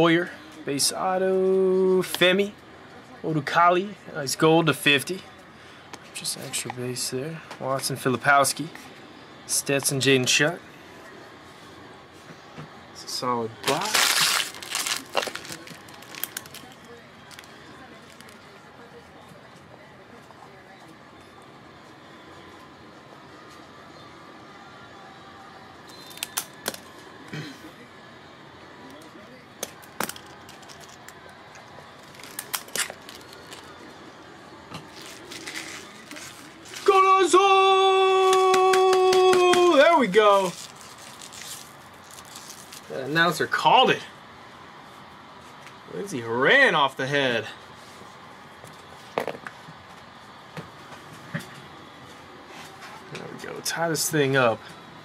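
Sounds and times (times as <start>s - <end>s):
trading cards and wrapping handled: 13.6s - 18.5s, 28.9s - 34.0s, 34.7s - 37.1s, 38.2s - 43.1s
recorded announcer's call: 36.8s - 40.5s.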